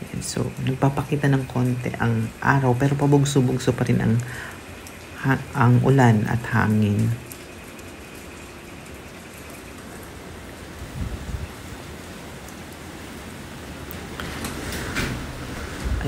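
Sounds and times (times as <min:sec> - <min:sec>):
rain hissing: 0:00.0 - 0:16.0
gusty wind: 0:10.8 - 0:11.8, 0:14.5 - 0:16.0.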